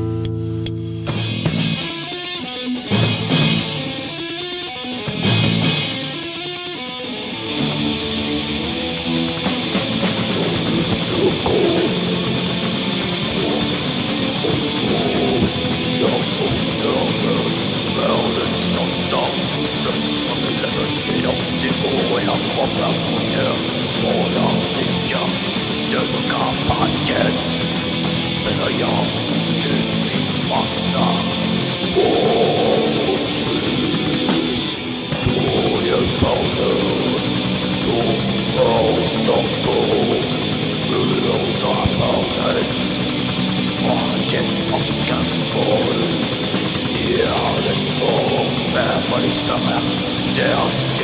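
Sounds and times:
black metal band playing: 0.0s - 51.0s
distorted electric guitars strummed: 0.0s - 51.0s.

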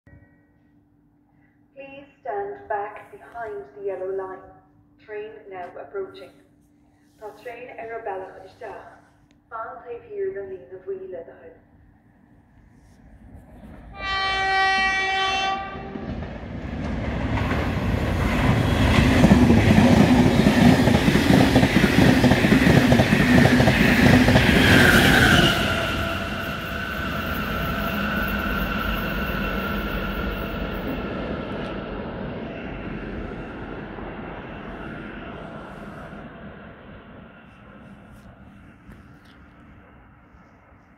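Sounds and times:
train passing at speed: 12.2s - 40.9s
train horn blast: 13.9s - 16.0s, 24.9s - 26.4s.

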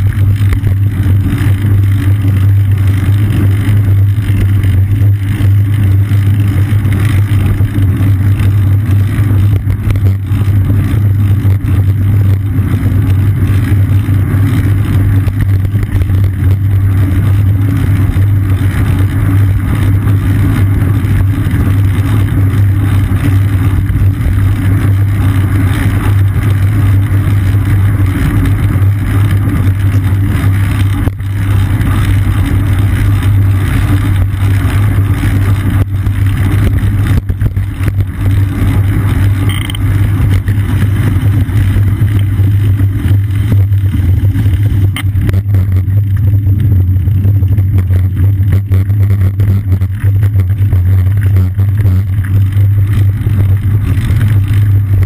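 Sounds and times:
wind and road rumble: 0.0s - 55.0s.

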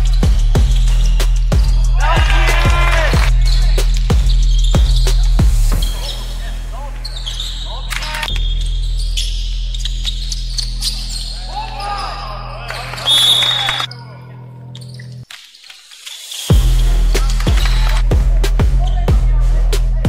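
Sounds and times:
shoe squeaks: 0.0s - 1.9s, 3.3s - 16.6s
players' voices: 1.6s - 8.3s, 16.5s - 20.0s
steady low bass: 16.5s - 20.0s.

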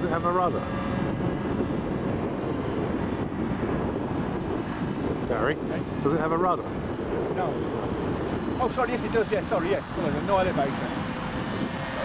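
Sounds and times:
model aircraft motor drone: 0.0s - 12.0s
wind on microphone: 0.0s - 12.0s.

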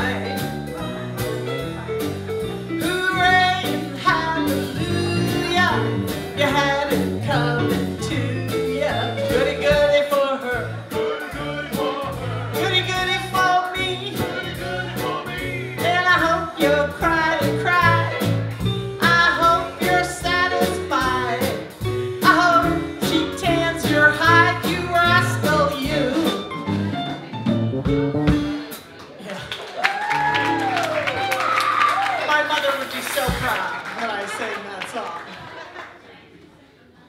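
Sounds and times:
electric bass: 0.0s - 28.7s
drum kit: 0.0s - 29.0s, 33.0s - 33.7s.

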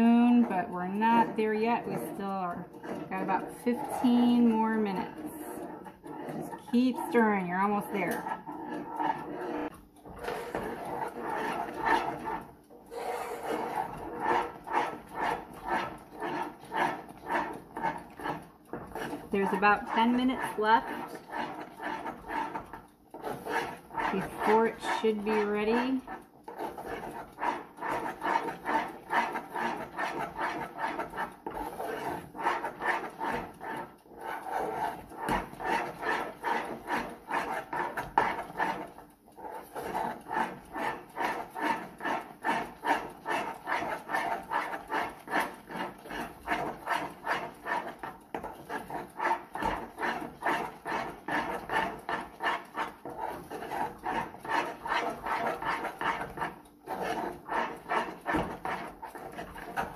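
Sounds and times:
metal spoon stirring sticky paste: 0.0s - 59.9s.

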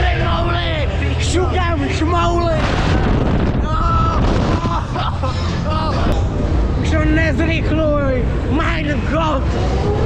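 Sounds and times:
wind rushing over microphone: 0.0s - 10.0s
rider screaming: 3.6s - 6.1s.

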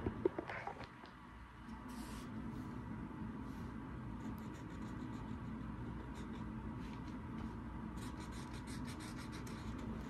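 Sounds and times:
steady low hum: 0.0s - 10.0s
highlighter scratching on paper: 3.6s - 7.0s, 8.0s - 10.0s.

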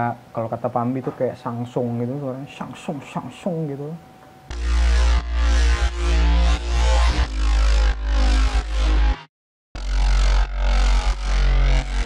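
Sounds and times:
distorted dubstep synth bass: 4.5s - 9.2s, 9.8s - 12.0s
heavy sub-bass: 4.5s - 12.0s.

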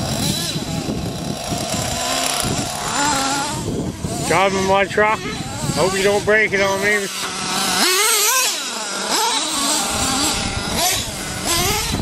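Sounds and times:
rc car engine revving: 0.0s - 12.0s.

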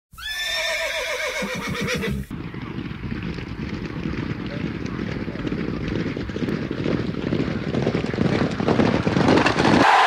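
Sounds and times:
horse whinnying: 0.1s - 2.3s.

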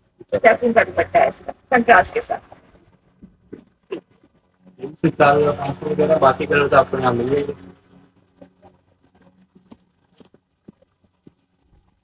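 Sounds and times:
person speaking: 4.8s - 7.6s.

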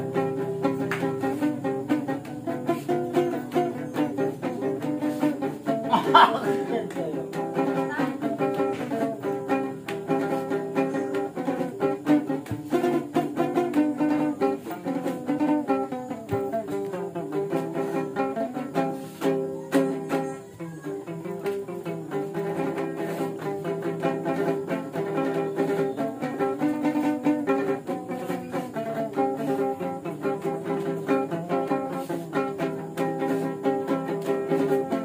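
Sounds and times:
ukulele strummed and picked: 0.0s - 35.0s.

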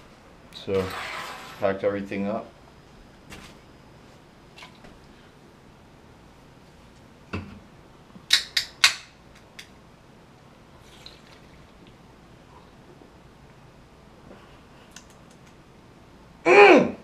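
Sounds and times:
faint drinking: 10.7s - 13.1s.

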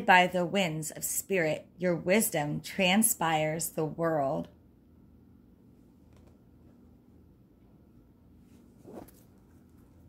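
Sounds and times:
card brushing across table: 8.6s - 9.4s.

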